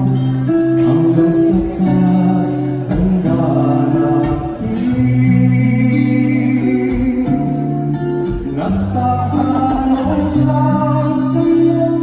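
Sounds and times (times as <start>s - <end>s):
guitar accompaniment: 0.0s - 12.0s
man singing a slow ballad: 0.0s - 12.0s.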